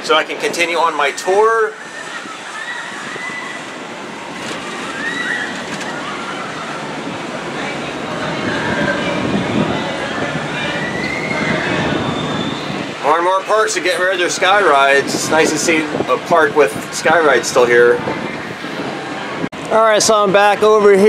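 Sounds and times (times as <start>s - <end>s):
faint distant voices: 0.0s - 20.6s
gondola running along cable: 0.0s - 21.0s.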